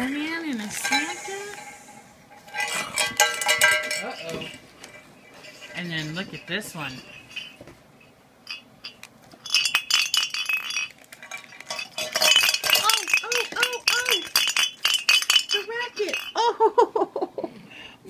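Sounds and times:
jingle bells shaken: 0:00.0 - 0:16.7
person speaking: 0:12.6 - 0:14.4, 0:15.5 - 0:16.4.

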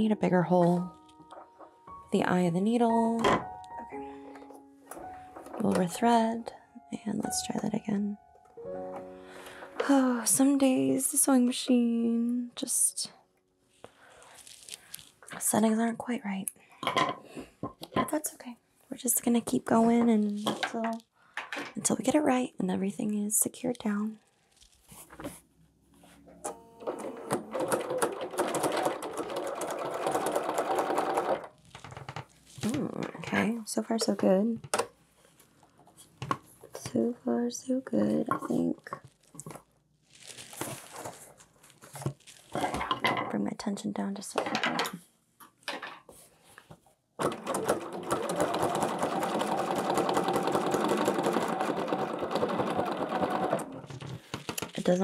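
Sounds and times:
sewing machine needle clatter: 0:26.8 - 0:32.0, 0:47.2 - 0:54.0.

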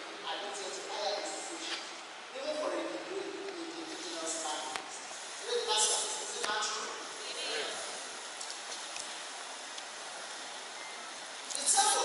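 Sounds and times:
room tone hiss: 0:00.0 - 0:12.0.

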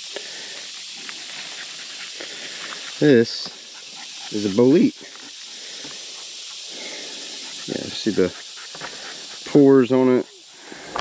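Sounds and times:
twigs and leaf litter crackling: 0:00.0 - 0:09.6
insect chorus hiss: 0:00.0 - 0:11.0.

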